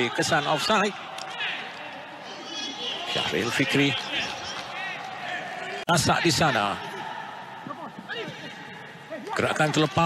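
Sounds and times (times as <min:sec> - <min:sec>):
football match broadcast noise: 0:00.0 - 0:10.0.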